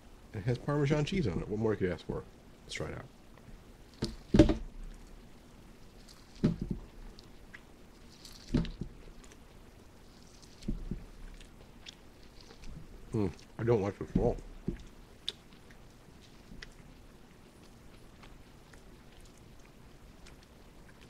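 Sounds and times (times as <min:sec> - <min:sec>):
man chewing food: 0:03.3 - 0:21.0
mouth clicks: 0:15.2 - 0:15.8.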